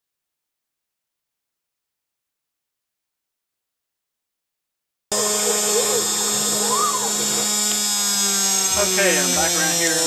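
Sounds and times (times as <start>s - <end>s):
router spindle whining: 5.1s - 10.0s.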